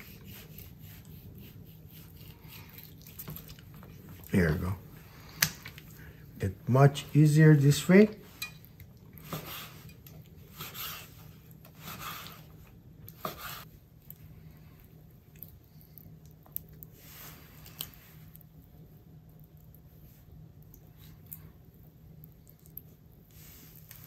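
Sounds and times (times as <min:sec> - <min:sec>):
handling wet meat: 0:00.0 - 0:06.1.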